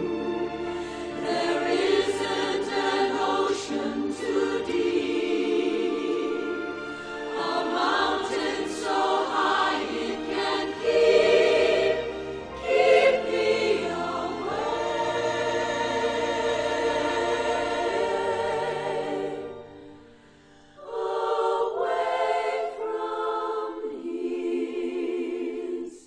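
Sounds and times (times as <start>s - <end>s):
choir singing gospel song: 0.0s - 26.0s.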